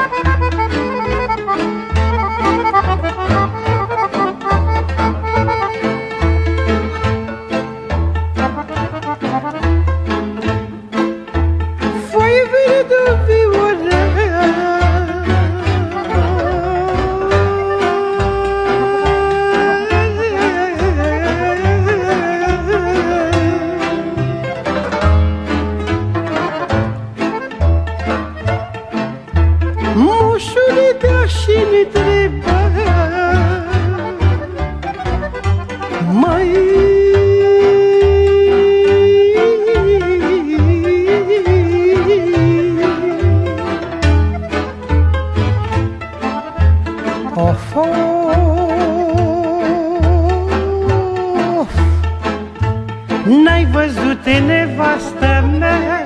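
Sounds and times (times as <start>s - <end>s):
bass line of low notes: 0.0s - 12.5s, 13.1s - 30.4s
folk party music: 0.0s - 56.0s
ornamented lead melody: 0.0s - 56.0s.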